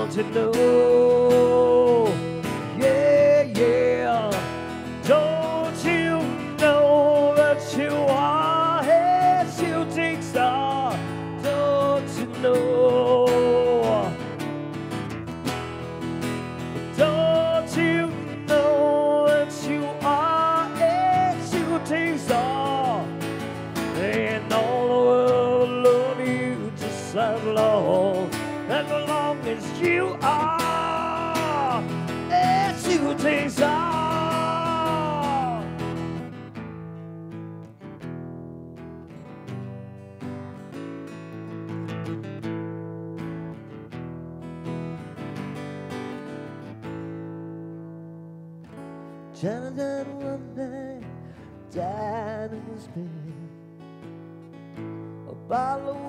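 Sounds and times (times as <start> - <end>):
acoustic guitar lead lines: 0.0 - 56.0
strummed acoustic guitar chords: 0.0 - 56.0.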